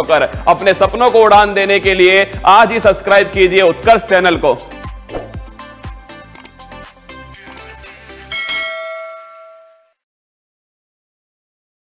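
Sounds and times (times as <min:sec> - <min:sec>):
outro music with beat: 0:00.2 - 0:08.8
bright bell-like chime: 0:08.3 - 0:10.0.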